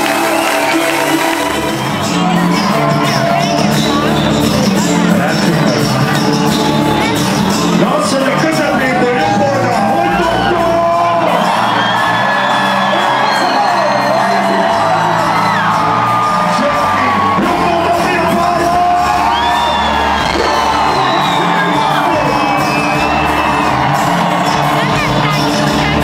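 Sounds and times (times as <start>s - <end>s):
live band playing through loudspeakers: 0.0s - 26.0s.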